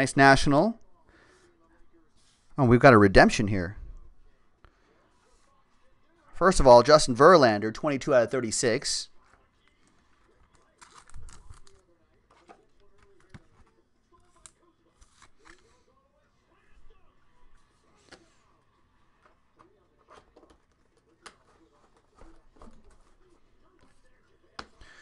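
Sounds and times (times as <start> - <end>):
card handling rustles and clicks: 9.2 - 15.9.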